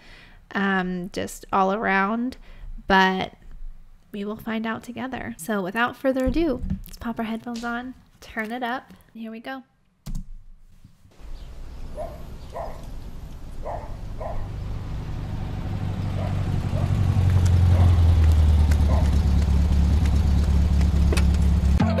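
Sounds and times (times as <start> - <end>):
low droning rumble: 11.2 - 21.8
music: 21.8 - 22.0.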